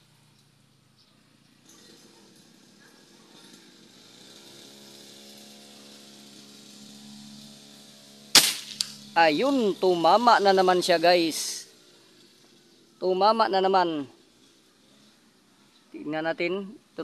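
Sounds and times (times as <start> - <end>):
distant small engine hum: 0.0 - 13.1
background hiss: 6.0 - 16.1.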